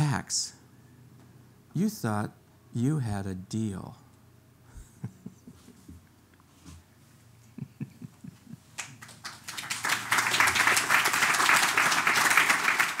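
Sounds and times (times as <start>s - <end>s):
audience applause: 8.8s - 13.0s.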